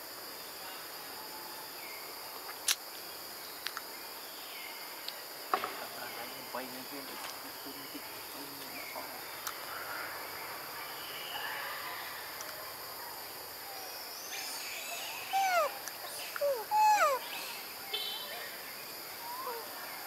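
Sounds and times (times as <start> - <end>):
high insect drone: 0.0 - 20.0
short animal calls: 15.3 - 15.8, 16.4 - 17.6.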